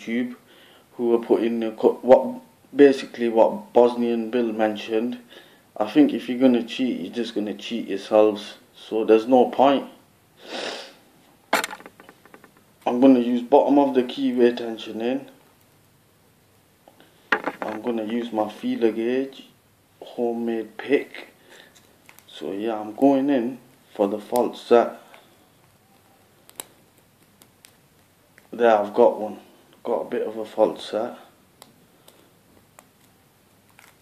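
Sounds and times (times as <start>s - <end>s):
person sniffing: 10.4s - 11.1s.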